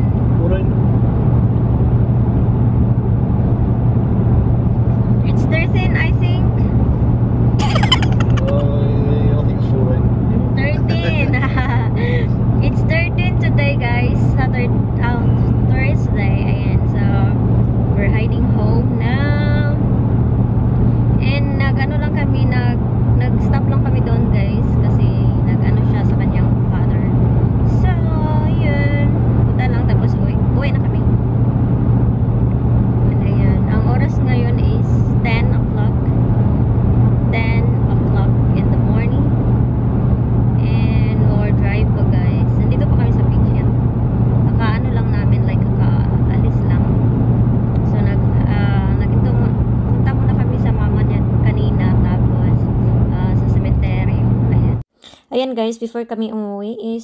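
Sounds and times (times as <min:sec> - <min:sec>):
car cabin road and engine drone: 0:00.0 - 0:55.2
woman talking: 0:05.3 - 0:06.7, 0:07.6 - 0:08.6, 0:10.6 - 0:17.4, 0:18.0 - 0:19.8, 0:21.2 - 0:27.1, 0:27.7 - 0:31.1, 0:33.1 - 0:36.1, 0:37.3 - 0:39.3, 0:40.6 - 0:43.7, 0:44.5 - 0:46.8, 0:47.9 - 0:57.0.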